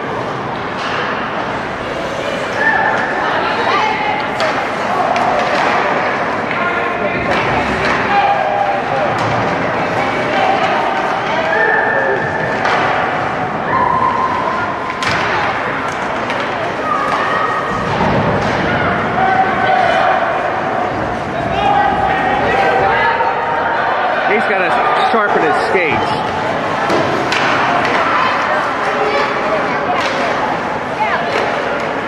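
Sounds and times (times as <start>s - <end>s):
hockey sticks and puck knocking: 4.2s - 6.6s, 14.9s - 18.7s, 25.9s - 29.0s, 29.9s - 30.4s
voices shouting: 7.7s - 9.2s, 10.0s - 15.3s, 16.8s - 29.5s.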